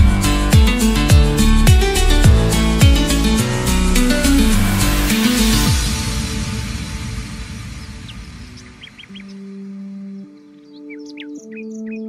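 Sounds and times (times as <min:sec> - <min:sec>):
soft sustained music chords: 0:00.0 - 0:12.0
bird chirps: 0:07.7 - 0:12.0.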